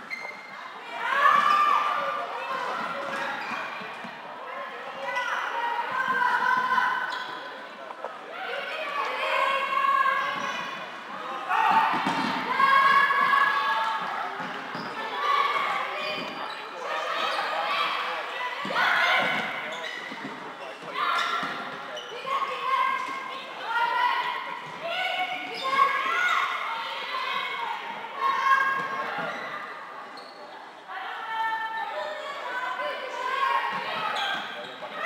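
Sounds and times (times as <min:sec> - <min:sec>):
knocks and squeaks on court floor: 0:00.0 - 0:04.2, 0:05.0 - 0:08.2, 0:10.1 - 0:11.0, 0:11.6 - 0:23.3, 0:24.3 - 0:26.7, 0:28.2 - 0:30.6, 0:33.7 - 0:35.0
players calling and shouting: 0:00.0 - 0:35.0.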